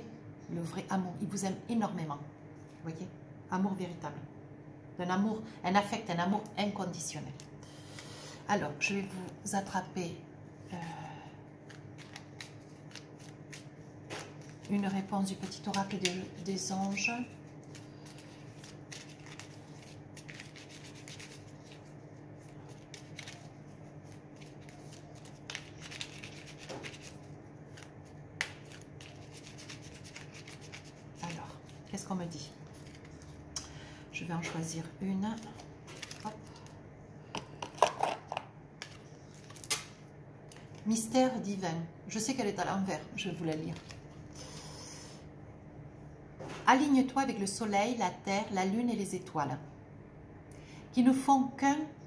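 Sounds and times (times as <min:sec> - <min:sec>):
cards being shuffled: 0:11.6 - 0:31.9, 0:32.5 - 0:33.4, 0:35.4 - 0:36.8.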